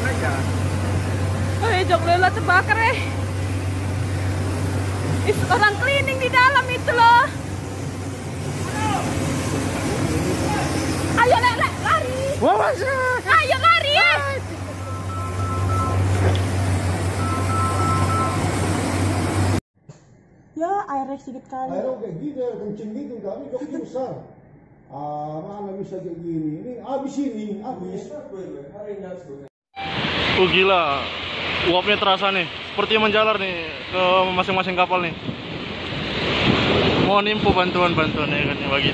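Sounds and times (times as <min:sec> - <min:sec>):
outdoor rumble and hiss: 0:00.0 - 0:19.6, 0:20.7 - 0:38.9
wash of noise: 0:00.0 - 0:19.6, 0:29.8 - 0:38.9
low hum: 0:00.0 - 0:20.6
two-tone electronic beeping: 0:14.8 - 0:16.2, 0:17.1 - 0:18.6.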